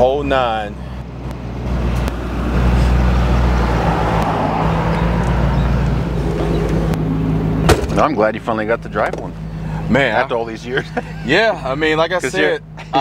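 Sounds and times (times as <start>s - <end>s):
car engine running: 0.0s - 13.0s
road noise: 0.0s - 13.0s.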